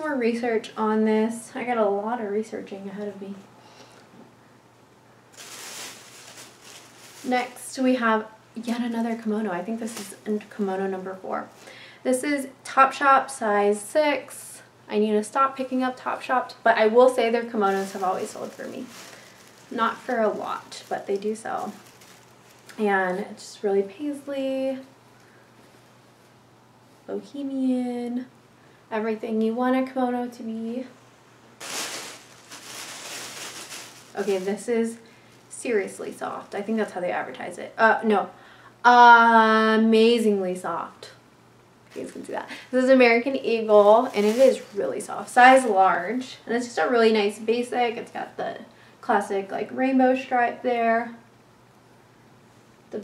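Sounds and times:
fabric rustling: 0:05.3 - 0:07.9, 0:17.5 - 0:23.4, 0:31.5 - 0:36.0, 0:43.8 - 0:45.1.

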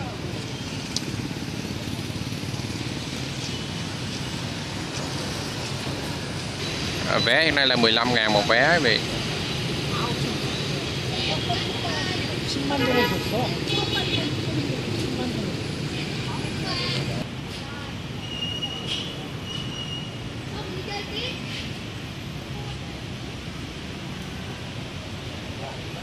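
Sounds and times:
people chattering: 0:00.0 - 0:05.3, 0:07.0 - 0:19.5
street traffic hum: 0:00.0 - 0:26.0
car horns tooting: 0:12.7 - 0:14.4.

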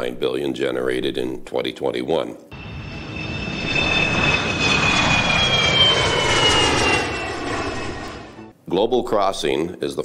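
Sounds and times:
high descending engine whine: 0:02.5 - 0:08.5
jet airliner flying past: 0:02.5 - 0:08.5.

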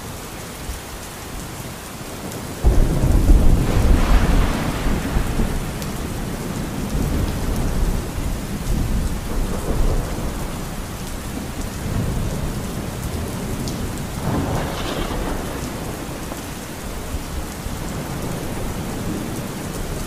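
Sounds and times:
steady rain: 0:00.0 - 0:20.0
low rolling thunder: 0:02.6 - 0:20.0.

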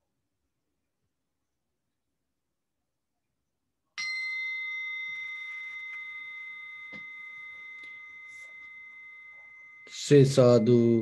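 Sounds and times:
meditation bell ringing: 0:04.0 - 0:11.0.

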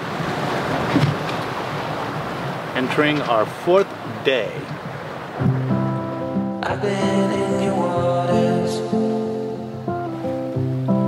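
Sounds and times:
waves: 0:00.0 - 0:11.0
wind: 0:00.0 - 0:11.0.

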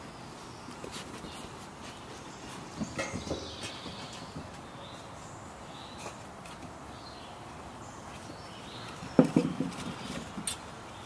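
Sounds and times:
puppies playing on wooden deck: 0:00.0 - 0:11.0.

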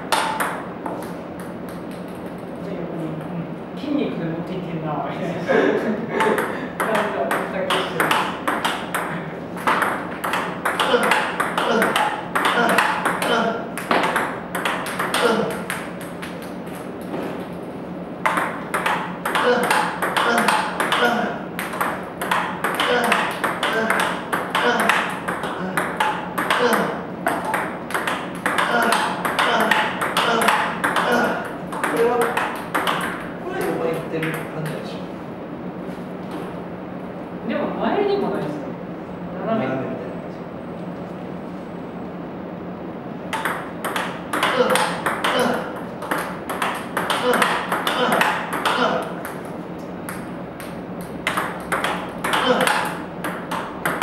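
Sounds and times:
balls bouncing on table and floor: 0:00.0 - 0:02.5, 0:06.2 - 0:17.5, 0:18.2 - 0:34.8, 0:43.3 - 0:54.0
paddle hitting table tennis balls: 0:00.0 - 0:02.5, 0:06.2 - 0:17.4, 0:18.2 - 0:34.8, 0:43.3 - 0:54.0.

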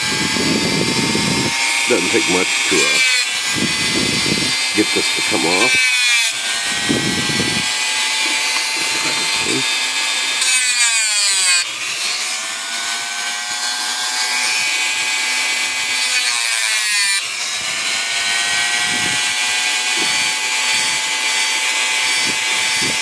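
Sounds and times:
cutoff wheel grinding wire: 0:00.0 - 0:23.0
rotary tool motor whine: 0:00.0 - 0:23.0.

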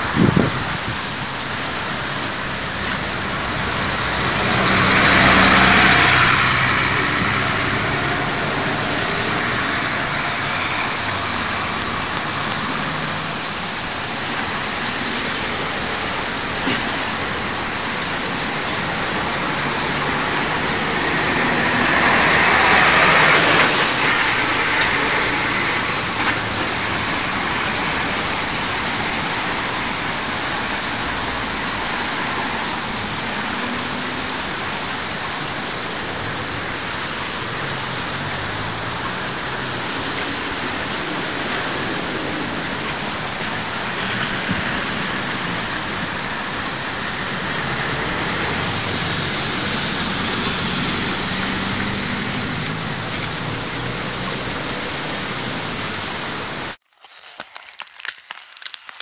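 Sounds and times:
heavy rain hissing: 0:00.0 - 0:56.8
traffic on wet road: 0:00.0 - 0:56.8.

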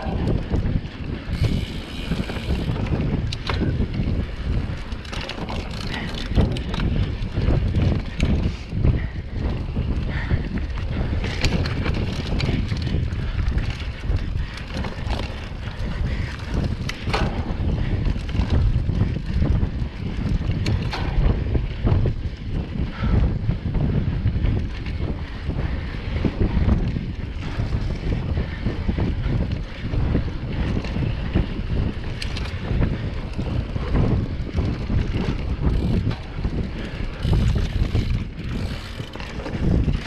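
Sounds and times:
bike clicks and rattles: 0:00.0 - 0:40.0
bike tyres rumbling on dirt: 0:00.0 - 0:40.0
wind buffeting microphone: 0:00.0 - 0:40.0.

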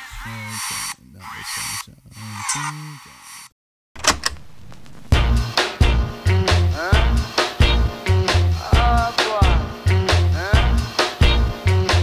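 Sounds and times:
music: 0:05.1 - 0:12.0.

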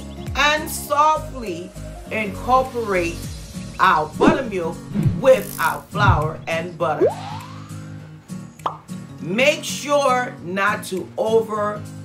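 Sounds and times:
background music: 0:00.0 - 0:12.0
short rising blip: 0:04.2 - 0:07.9
cartoon plop rising in pitch: 0:07.0 - 0:07.7.

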